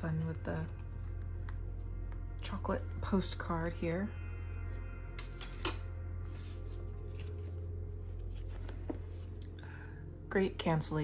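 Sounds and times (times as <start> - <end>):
low hum: 0.0 - 11.0
soft background music: 0.0 - 11.0.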